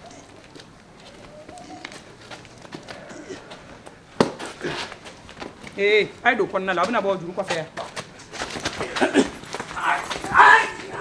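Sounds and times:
short loud vocal cries: 9.2 - 11.0.

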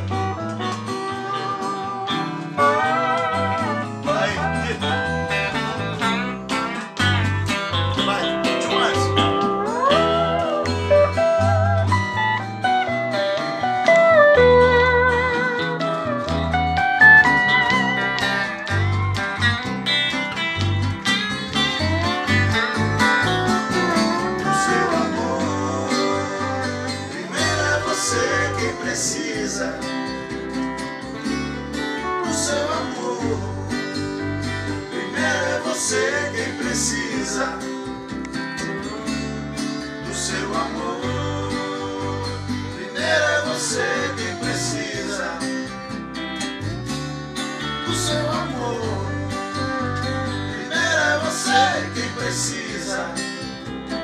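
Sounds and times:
bass guitar: 0.0 - 54.0
electric guitar: 0.0 - 54.0
steel guitar sliding lead: 0.0 - 54.0
strummed acoustic guitar: 0.0 - 54.0.

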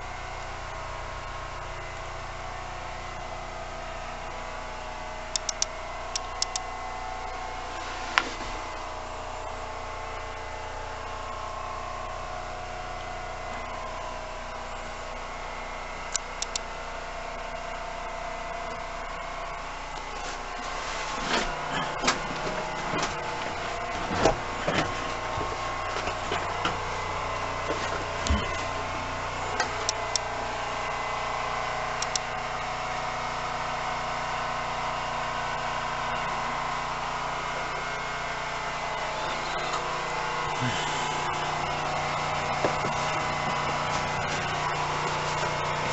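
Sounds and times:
train carriage running noise: 20.0 - 27.0, 40.6 - 45.9.

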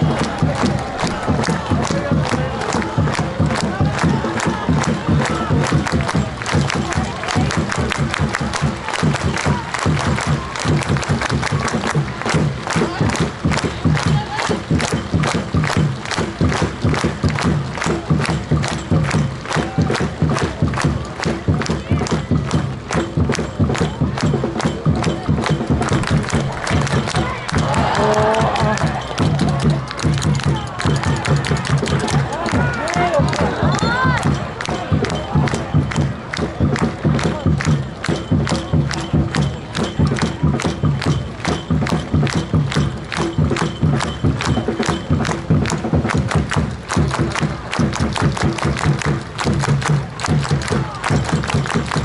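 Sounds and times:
crowd clapping in unison: 0.0 - 52.0
crowd noise: 0.0 - 52.0.

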